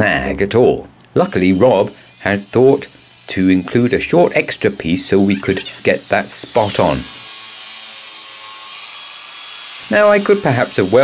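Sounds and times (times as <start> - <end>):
angle grinder grinding steel: 1.2 - 11.0.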